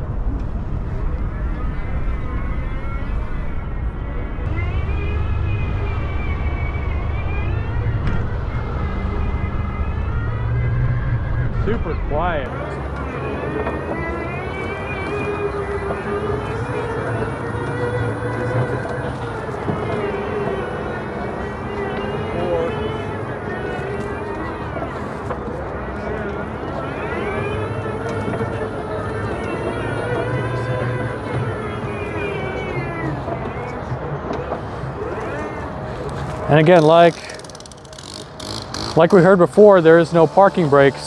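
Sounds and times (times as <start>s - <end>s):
electric mower motors whining: 4.5s - 11.8s, 12.6s - 41.0s.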